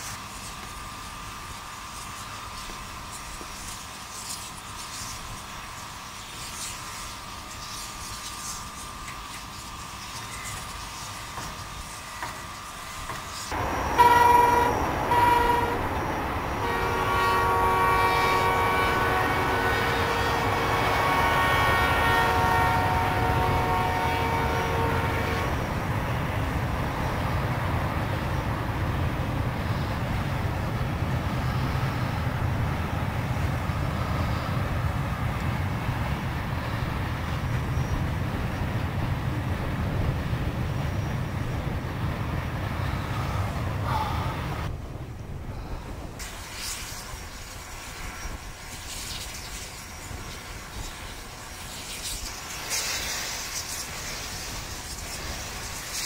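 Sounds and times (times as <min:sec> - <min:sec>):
low rumble of train running: 0:00.0 - 0:56.0
steam locomotive whistle blasts: 0:13.5 - 0:16.0, 0:16.6 - 0:25.6.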